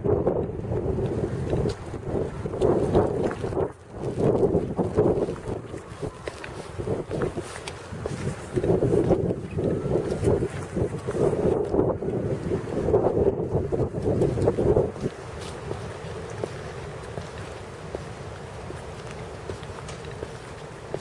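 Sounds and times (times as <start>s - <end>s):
wind buffeting microphone: 0.0s - 21.0s
footsteps on stepping stones: 0.4s - 12.2s, 12.8s - 21.0s.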